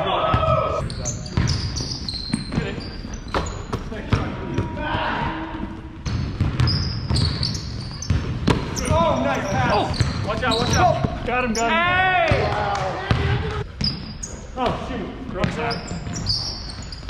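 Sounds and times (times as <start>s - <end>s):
players' voices: 0.0s - 16.9s
basketball bouncing on hardwood: 6.0s - 8.8s, 9.4s - 11.3s.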